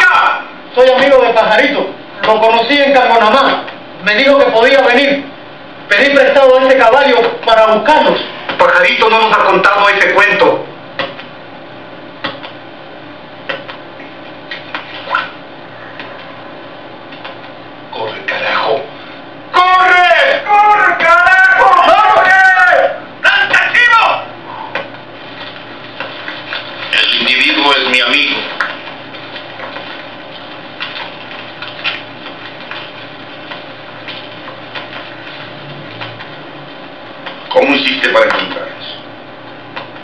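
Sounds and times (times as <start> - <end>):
person speaking loudly: 0.0 - 5.3, 19.5 - 24.4
background hiss and hum: 0.0 - 40.0
person shouting wordlessly: 19.6 - 24.3.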